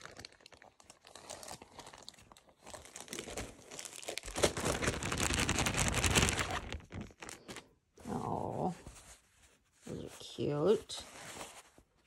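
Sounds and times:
plastic bag crinkling: 0.0s - 7.8s.

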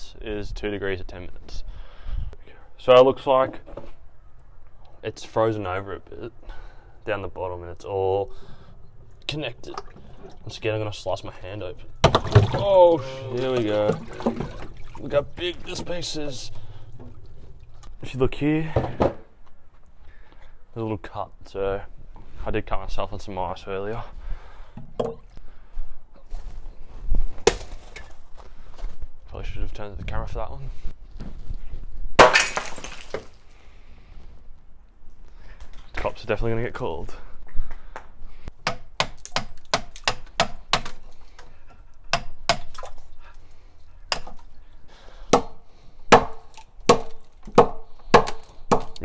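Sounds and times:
ice smashing on ground: 32.2s - 33.4s.

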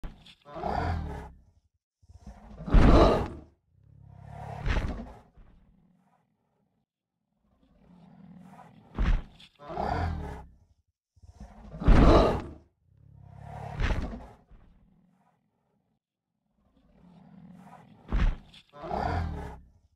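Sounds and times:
dinosaur roaring: 0.5s - 1.4s, 2.1s - 6.0s, 7.6s - 10.6s, 11.2s - 14.4s, 16.8s - 18.1s, 18.8s - 19.7s.

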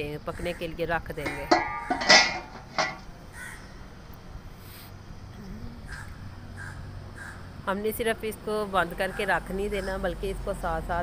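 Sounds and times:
metal lid set on cooking pot: 1.2s - 3.1s
crow cawing: 3.3s - 3.8s, 5.9s - 7.5s.

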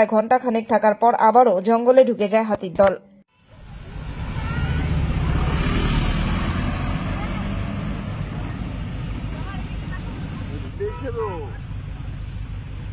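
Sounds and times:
faint voices outside: 3.3s - 6.1s, 6.7s - 12.9s
road noise: 3.3s - 12.9s
vehicle engine rumble: 3.3s - 12.9s.

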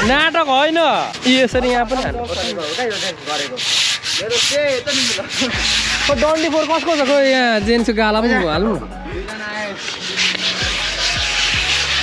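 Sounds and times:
fabric rubbing against microphone: 0.0s - 7.6s, 9.3s - 12.0s
person speaking: 0.0s - 11.1s.

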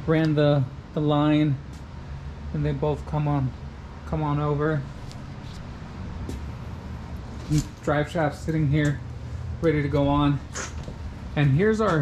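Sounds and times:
man talking: 0.0s - 1.7s, 2.5s - 4.9s, 7.5s - 10.5s, 11.3s - 12.0s
low room hum: 0.0s - 12.0s.

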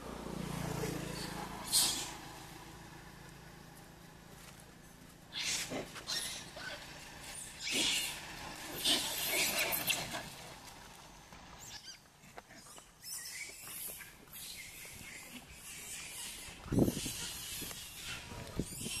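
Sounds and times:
macaques harsh calls: 1.1s - 2.3s, 5.3s - 10.4s, 12.6s - 19.0s.

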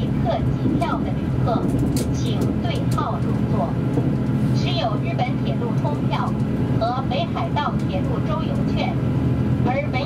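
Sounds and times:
recorded passenger announcement: 0.0s - 3.9s, 4.5s - 10.0s
train diesel engine hum: 0.0s - 10.0s.

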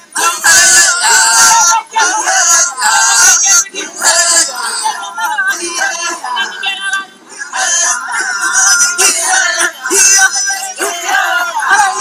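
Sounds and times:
men chanting in a group: 0.0s - 12.0s.

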